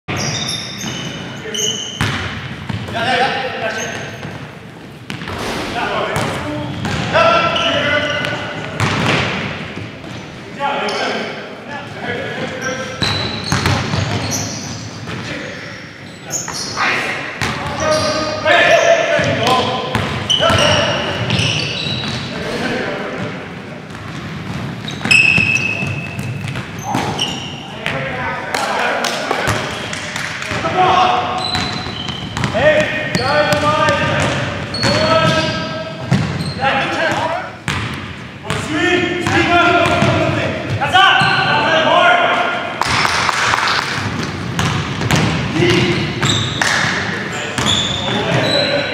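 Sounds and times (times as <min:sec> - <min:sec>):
players calling out: 0:05.2 - 0:08.8, 0:10.1 - 0:23.6
basketball bouncing on wooden floor: 0:08.2 - 0:10.2, 0:13.0 - 0:14.2, 0:23.9 - 0:27.2, 0:31.6 - 0:35.4, 0:36.0 - 0:36.4, 0:39.2 - 0:40.8, 0:44.0 - 0:46.6.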